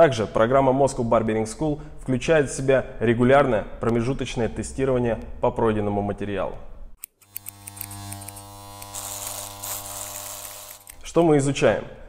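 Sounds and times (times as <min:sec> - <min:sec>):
electric hair clipper buzzing: 0:07.0 - 0:11.3.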